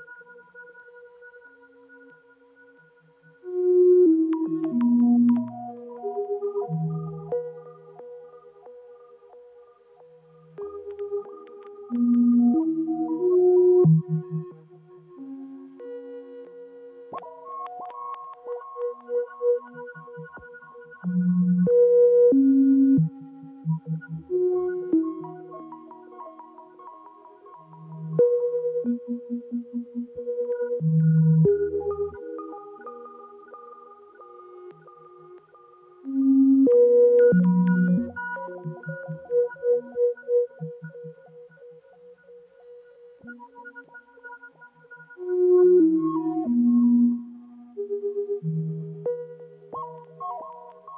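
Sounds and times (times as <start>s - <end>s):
modular synthesizer music: 0.0s - 50.9s
cluster of clicks: 10.6s - 12.3s, 49.8s - 50.9s.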